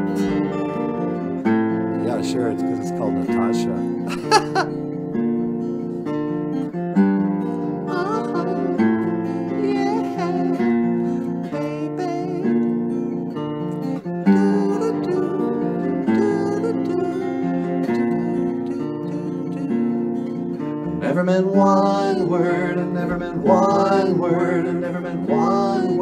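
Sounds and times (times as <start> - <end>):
acoustic guitar strumming chords: 0.0 - 26.0.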